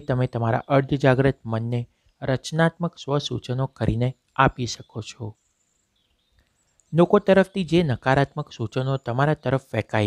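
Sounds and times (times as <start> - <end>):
man narrating: 0.0 - 5.4, 6.9 - 10.0.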